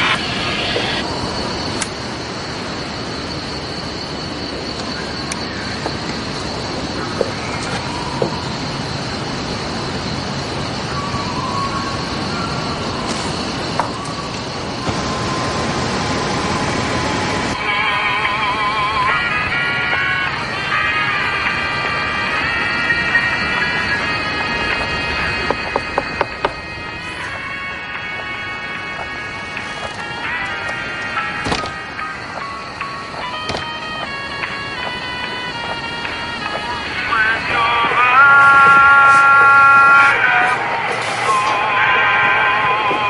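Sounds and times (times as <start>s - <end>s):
radio static hiss: 0.0s - 10.9s, 12.4s - 43.0s
high whistle: 0.0s - 43.0s
music with wavering high tones: 0.0s - 43.0s.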